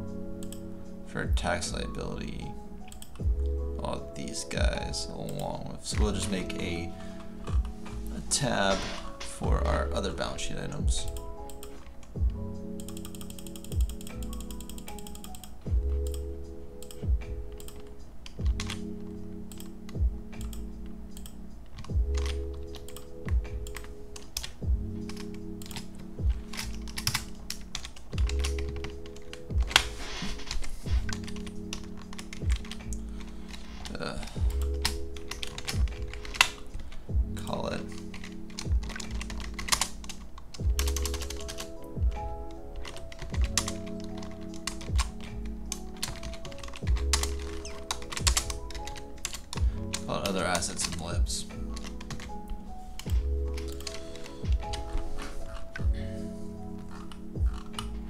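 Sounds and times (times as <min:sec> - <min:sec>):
background music with bass: 0:00.0 - 0:58.0
keyboard key clicks: 0:12.8 - 0:18.8, 0:19.5 - 0:36.9, 0:37.8 - 0:51.0, 0:51.6 - 0:56.0.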